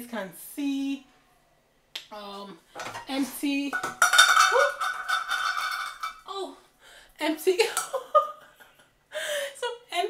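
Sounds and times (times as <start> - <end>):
cans and containers clattering: 2.8 - 6.3.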